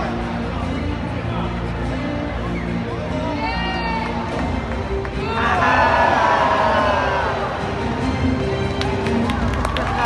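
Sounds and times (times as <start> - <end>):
crowd noise: 0.0 - 10.0
audience clapping: 4.0 - 5.9, 8.5 - 10.0.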